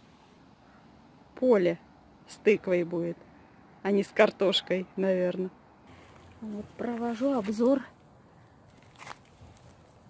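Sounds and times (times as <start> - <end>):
hand rustling through plants: 5.9 - 8.0, 8.6 - 10.0.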